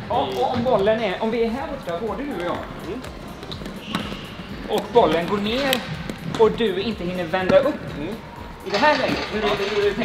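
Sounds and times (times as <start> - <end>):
high squeak: 3.8 - 4.8.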